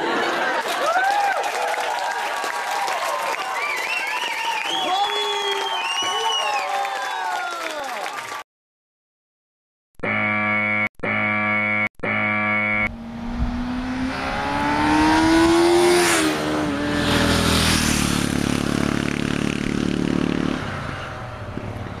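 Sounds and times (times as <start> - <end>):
horn-like tone blasts: 10.0 - 13.5
motor vehicle passing: 12.8 - 22.0.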